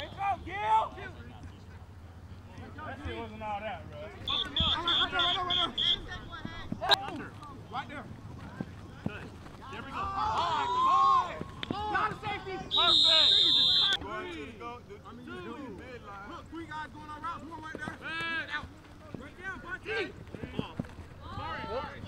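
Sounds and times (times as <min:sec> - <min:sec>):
men calling and shouting: 0:00.0 - 0:22.0.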